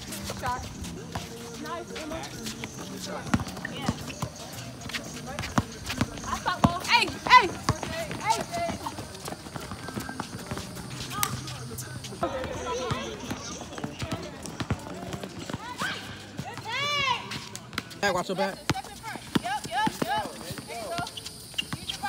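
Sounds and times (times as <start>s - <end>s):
sneakers running on hard court: 0.0s - 22.0s
basketballs bouncing: 0.1s - 22.0s.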